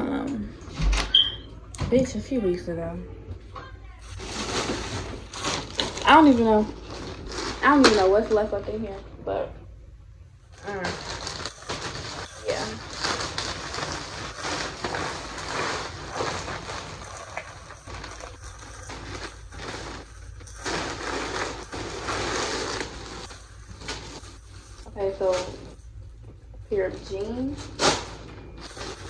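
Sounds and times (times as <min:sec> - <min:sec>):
plastic mailer bag rustling: 0:04.0 - 0:08.6, 0:10.5 - 0:26.0, 0:26.7 - 0:29.0.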